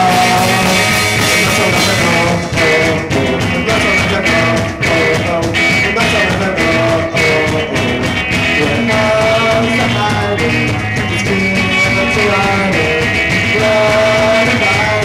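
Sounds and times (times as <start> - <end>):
electric guitar: 0.0 - 15.0
live rock band playing: 0.0 - 15.0.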